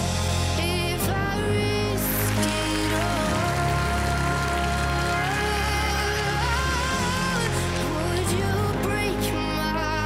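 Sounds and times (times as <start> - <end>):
live band playing pop ballad: 0.0 - 10.0
audience clapping: 1.6 - 9.1.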